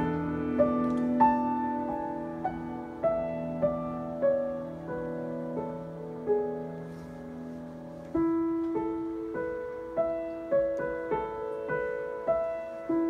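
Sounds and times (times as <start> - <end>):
upright piano notes ringing: 0.0 - 13.0.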